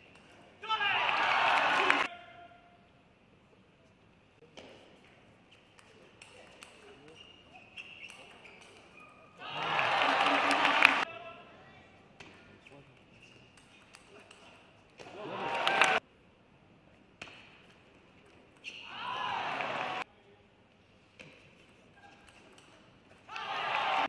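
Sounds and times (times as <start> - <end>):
crowd shouting and cheering: 0.6 - 2.1, 9.4 - 11.1, 15.1 - 16.0, 18.9 - 20.0, 23.3 - 24.0.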